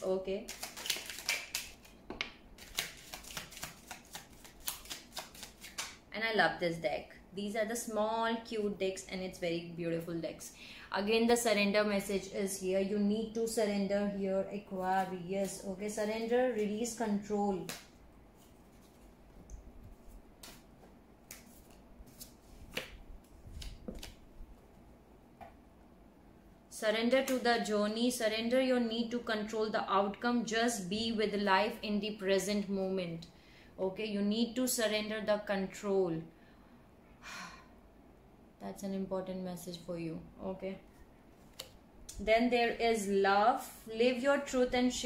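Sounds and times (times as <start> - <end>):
cards being shuffled: 0.4 - 6.0, 17.6 - 19.2, 19.8 - 24.3, 41.3 - 41.8
cards clicking and tapping: 0.5 - 6.0.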